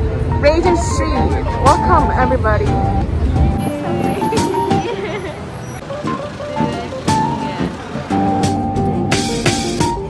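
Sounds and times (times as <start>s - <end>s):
background music with held notes: 0.0s - 10.0s
street traffic noise: 0.0s - 10.0s.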